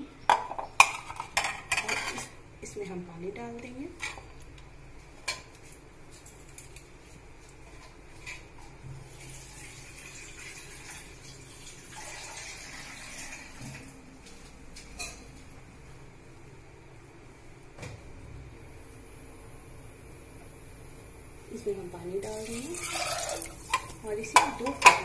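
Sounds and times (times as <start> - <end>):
water pouring into metal pot: 9.2 - 13.6, 22.4 - 23.8.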